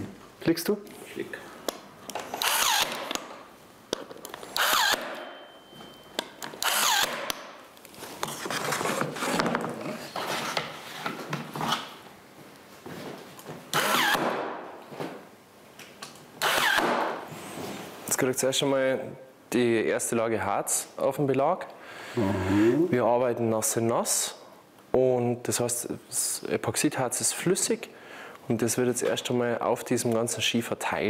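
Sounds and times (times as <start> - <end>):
electric staple gun firing: 2.4 - 3.3, 4.6 - 5.2, 6.6 - 7.5, 16.4 - 17.1.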